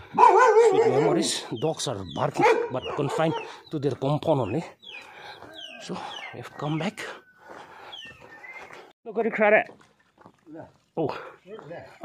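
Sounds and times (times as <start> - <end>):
bird whistle calls: 4.8 - 8.9.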